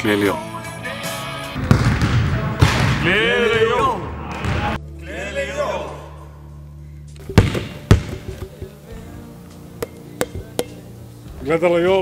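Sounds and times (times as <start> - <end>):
quiet background music: 0.0 - 12.0
basketball bouncing on gym floor: 1.6 - 3.0, 7.3 - 8.8.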